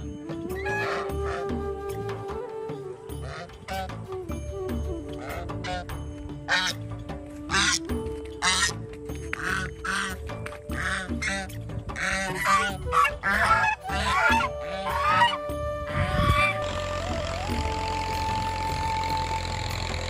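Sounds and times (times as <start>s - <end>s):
background music: 0.0s - 20.0s
geese honking: 0.6s - 1.5s, 3.2s - 4.1s, 5.2s - 6.8s, 7.5s - 20.0s.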